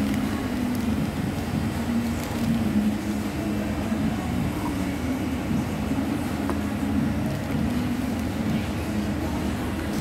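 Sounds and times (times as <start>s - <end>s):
low mechanical drone: 0.0s - 10.0s.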